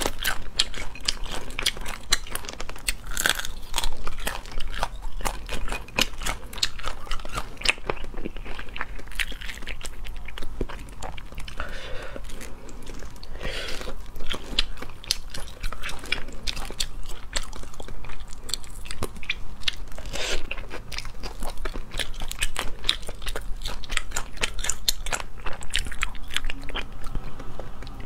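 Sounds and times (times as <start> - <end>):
biting and chewing: 0.0 - 28.0.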